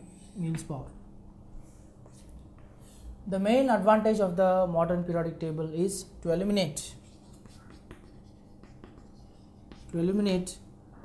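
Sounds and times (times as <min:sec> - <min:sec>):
chalk scratching on chalkboard: 0:01.6 - 0:03.1, 0:06.8 - 0:10.6
chalk tapping: 0:06.8 - 0:10.6.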